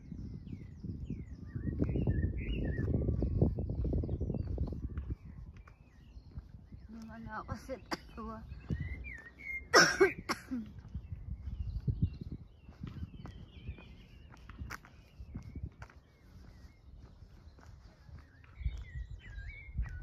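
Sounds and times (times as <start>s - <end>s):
footsteps on paved path: 0.0s - 20.0s
small birds chirping: 0.0s - 20.0s.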